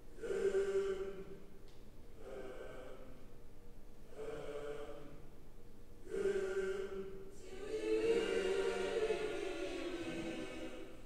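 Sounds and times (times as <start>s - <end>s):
choir chanting: 0.2s - 1.5s, 2.2s - 3.2s, 4.1s - 5.3s, 6.0s - 11.0s.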